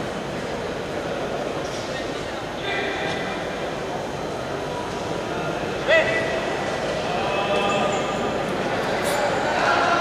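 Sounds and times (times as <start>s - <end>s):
reverberant sports hall ambience: 0.0s - 10.0s.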